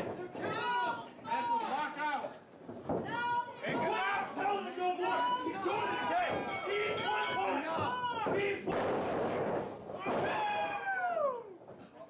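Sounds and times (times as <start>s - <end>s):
crowd shouting: 3.1s - 8.7s, 10.0s - 11.6s
long falling shout: 10.2s - 11.6s.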